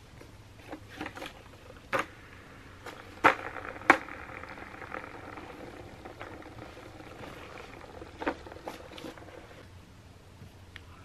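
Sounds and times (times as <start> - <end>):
skateboard wheel whirring: 0.0 - 9.8.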